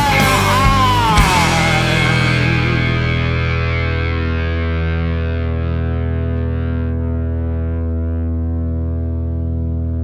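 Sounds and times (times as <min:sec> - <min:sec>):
distorted electric guitar chord ringing: 0:00.0 - 0:10.0.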